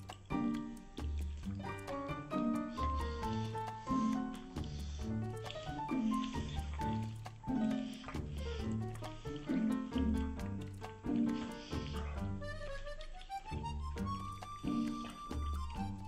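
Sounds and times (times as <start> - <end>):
cat eating wet food: 0.0 - 13.4
background music with beat: 0.0 - 16.0.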